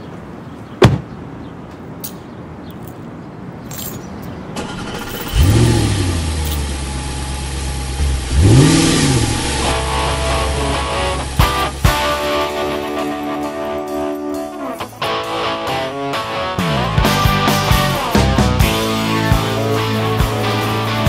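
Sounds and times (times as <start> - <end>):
car engine starting and revving: 4.6 - 12.4
guitar music: 8.2 - 21.0.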